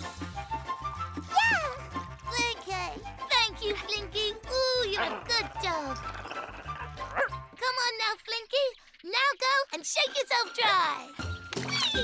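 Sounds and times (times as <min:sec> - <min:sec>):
background music: 0:00.0 - 0:08.6, 0:09.7 - 0:12.0
cartoon dog barking and yipping: 0:03.6 - 0:07.8.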